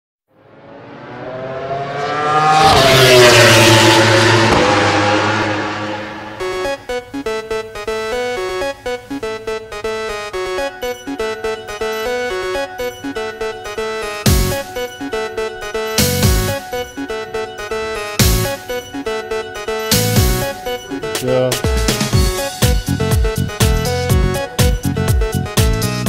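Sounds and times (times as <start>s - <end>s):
vehicle engine passing by: 0.3s - 7.0s
electronic music with steady beat: 2.6s - 26.0s.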